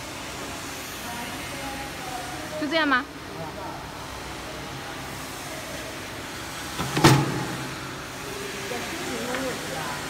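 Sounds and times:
punching press thud: 0:06.8 - 0:07.7.

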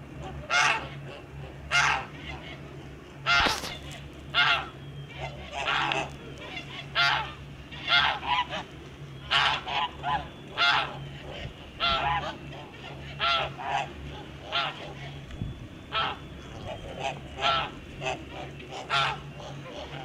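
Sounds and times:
geese honking: 0:00.0 - 0:20.0.

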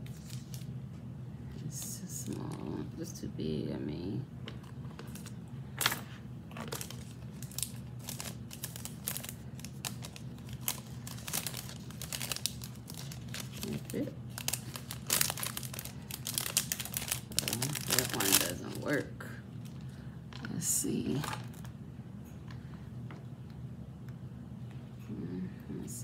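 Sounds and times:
plastic bags crinkling: 0:04.5 - 0:21.7.

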